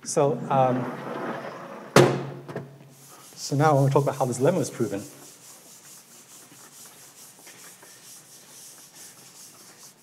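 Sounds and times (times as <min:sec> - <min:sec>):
eraser scrubbing chalkboard: 0:02.9 - 0:10.0.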